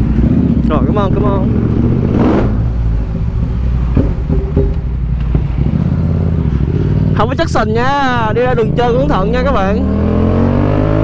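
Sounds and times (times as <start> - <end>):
motorcycle engine low rumble: 0.0 - 10.1
light knocks: 3.9 - 5.5.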